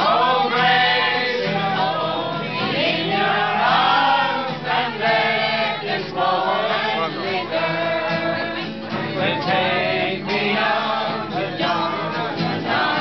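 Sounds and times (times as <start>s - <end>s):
group singing together: 0.0s - 13.0s
strummed acoustic guitar: 0.0s - 13.0s.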